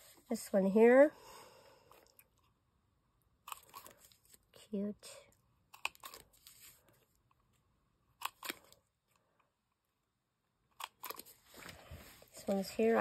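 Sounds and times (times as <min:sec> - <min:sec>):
card rustling on paper: 0:05.9 - 0:07.6.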